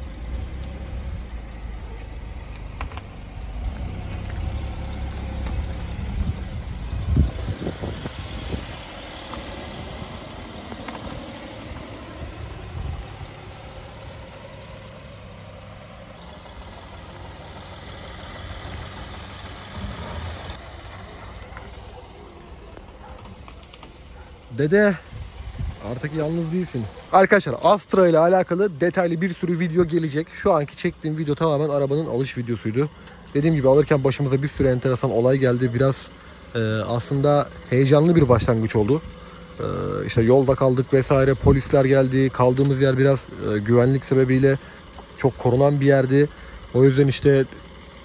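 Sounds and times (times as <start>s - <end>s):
car engine running at low speed: 0.0s - 48.0s.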